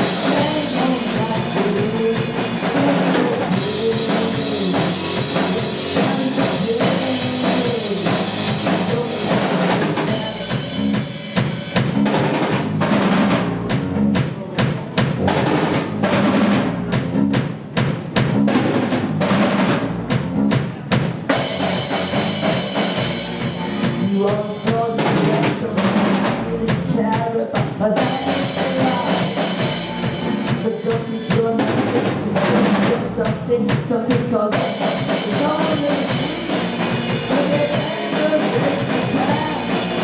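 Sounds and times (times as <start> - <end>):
drum hits: 0.0 - 40.0
live rock band playing: 0.0 - 40.0.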